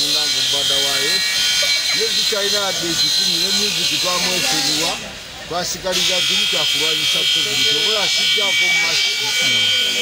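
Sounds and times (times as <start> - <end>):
high-pitched buzz: 0.0 - 10.0.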